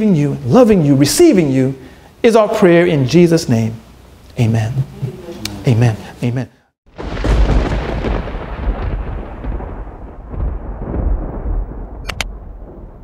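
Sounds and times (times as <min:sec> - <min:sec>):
deep cinematic boom: 0:07.0 - 0:13.0
quick click effects: 0:12.0 - 0:12.3.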